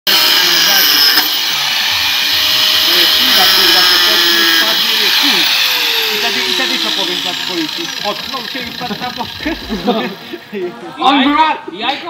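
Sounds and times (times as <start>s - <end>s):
angle grinder whining: 0.1s - 10.6s.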